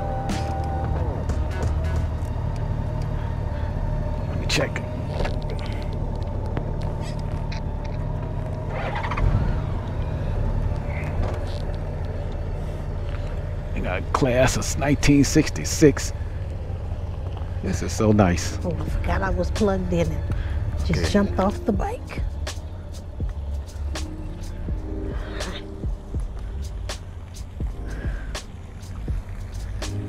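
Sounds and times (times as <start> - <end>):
motorcycle engine idling: 0.0 - 30.0.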